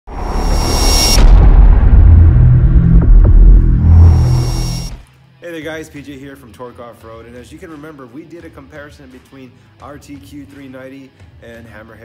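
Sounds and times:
deep booming bass rumble: 0.1s - 5.0s
rush of noise with high whine: 0.1s - 5.0s.

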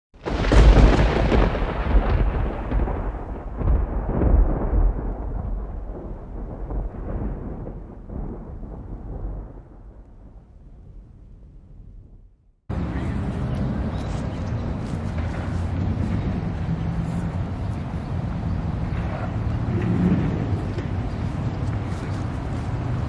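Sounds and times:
thunder-like rumble: 0.2s - 23.0s.

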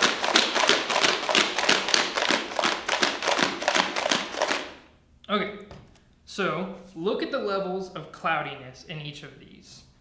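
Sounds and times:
rocks shaken in plastic bottles: 0.0s - 4.7s.

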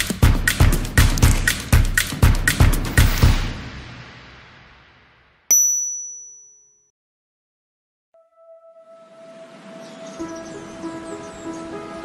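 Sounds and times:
music track beat: 0.0s - 3.7s
sharp ding: 5.5s - 6.9s.

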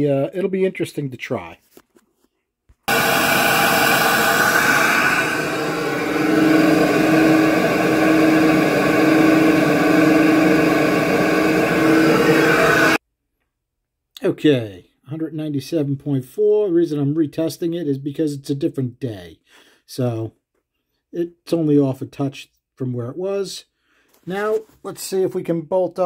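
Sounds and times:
flow bench air rushing roar: 2.9s - 13.0s
steady hum: 2.9s - 13.0s.

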